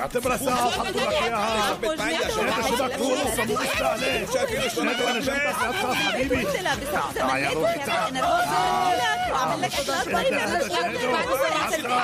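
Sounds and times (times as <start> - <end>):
people talking over one another: 0.0 - 12.0.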